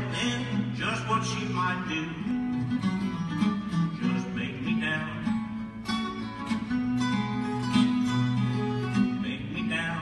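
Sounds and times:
acoustic guitar plucked: 0.0 - 10.0.

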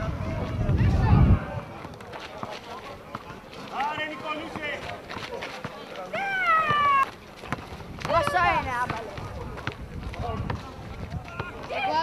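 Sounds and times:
children shouting: 6.1 - 7.1.

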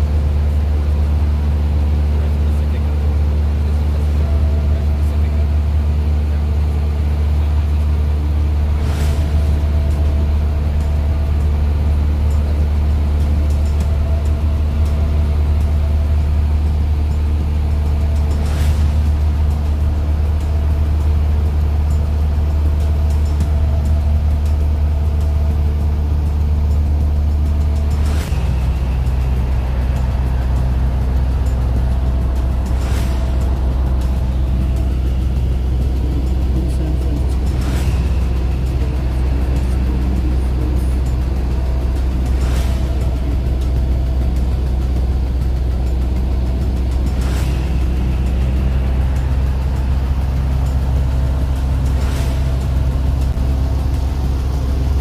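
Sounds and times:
propeller plane engine droning: 0.0 - 55.0.

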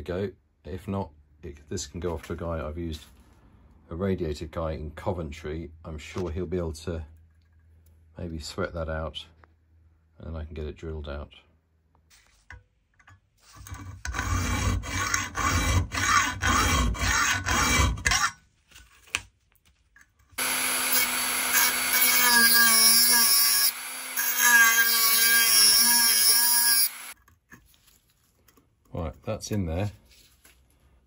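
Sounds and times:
hand saw rasping on steel: 14.1 - 18.2, 20.4 - 27.2
rotary tool grinding whine: 20.4 - 27.2.

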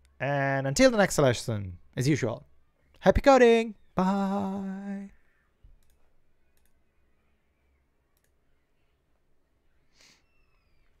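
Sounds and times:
faint clicks: 5.6 - 6.8, 8.1 - 8.4.

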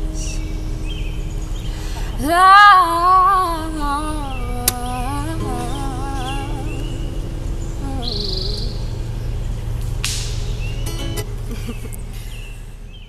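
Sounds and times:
acoustic guitar chord ringing: 0.0 - 12.8
birds chirping: 0.0 - 13.0.

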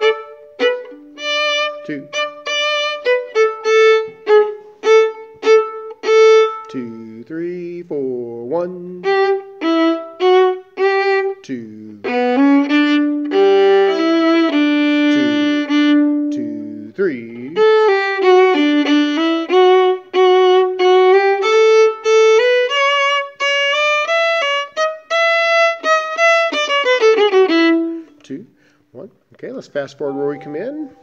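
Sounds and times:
solo violin playing: 0.0 - 7.7, 8.8 - 28.2, 30.0 - 31.0.

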